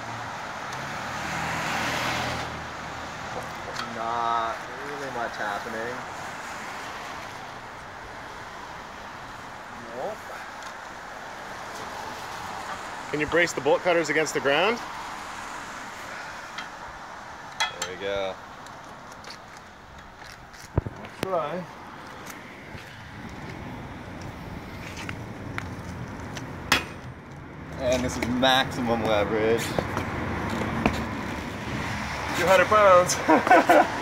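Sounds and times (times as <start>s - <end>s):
outdoor background noise: 0.0s - 34.0s
street traffic: 0.0s - 34.0s.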